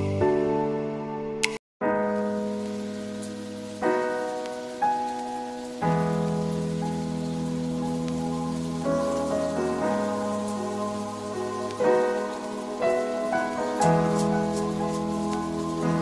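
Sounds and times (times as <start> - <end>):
slow keyboard chords: 0.0 - 16.0
soft hiss: 2.0 - 16.0.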